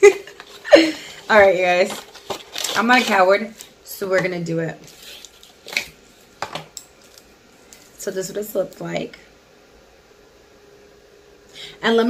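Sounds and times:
plastic wrapper handling: 1.3 - 3.8, 4.8 - 8.0.

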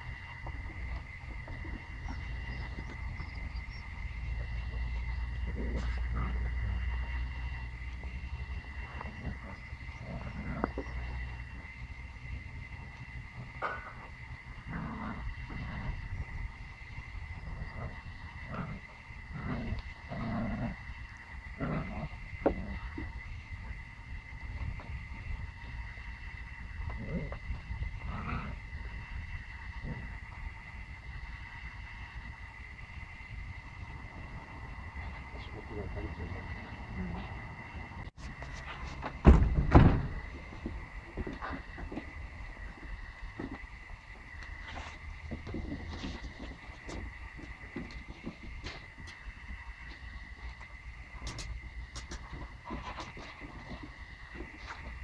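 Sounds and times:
puppy growling: 1.5 - 11.2, 13.6 - 16.1, 17.4 - 20.8, 21.6 - 23.0, 26.8 - 28.9.

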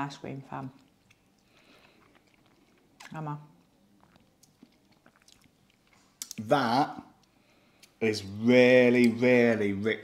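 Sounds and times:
mouth eating noises: 0.6 - 8.0.

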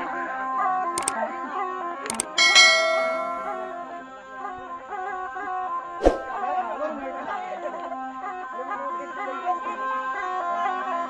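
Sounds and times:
sharp clicks: 2.1 - 3.7
bell ding: 2.1 - 3.8.

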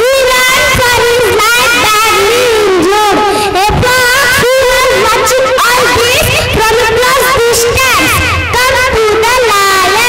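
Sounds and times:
children shouting through a microphone: 0.0 - 10.0.

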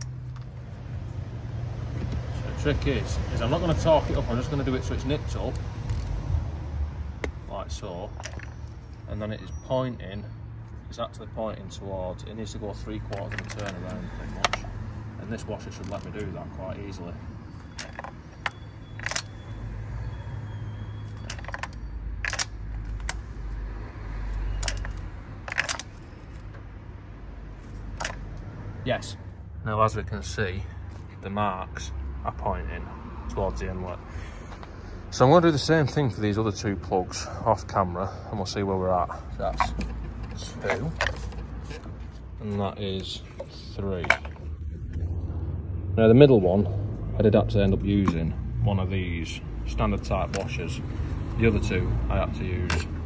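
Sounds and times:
socket wrench clinking: 5.5 - 6.2, 8.2 - 9.0, 13.0 - 14.7, 17.5 - 19.6, 21.0 - 23.3, 24.5 - 26.5, 27.9 - 28.2.

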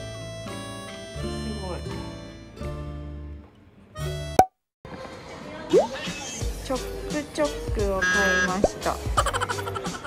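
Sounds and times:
rising pop sound effect: 5.7 - 6.0
background music: 5.7 - 10.0.

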